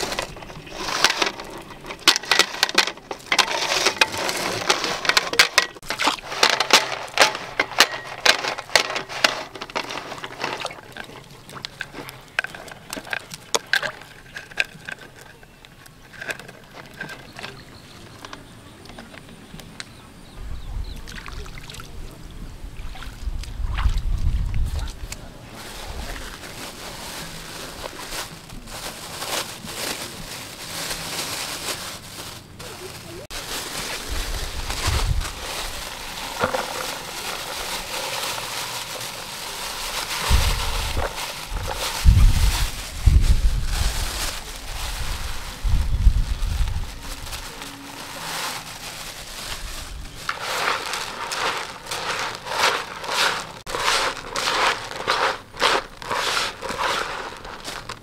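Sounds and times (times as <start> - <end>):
plastic bags crinkling: 0.0 - 17.7, 25.5 - 58.0
hands kneading rice: 24.8 - 58.0.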